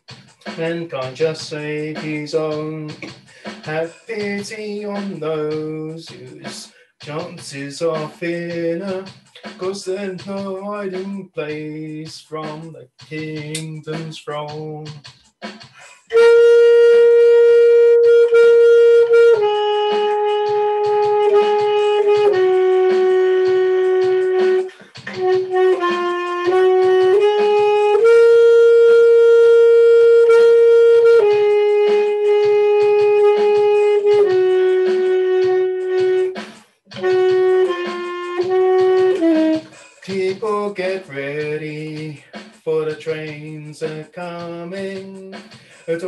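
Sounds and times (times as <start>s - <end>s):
backing track with light beat: 0.0s - 46.0s
saxophone slow melody: 16.1s - 39.8s.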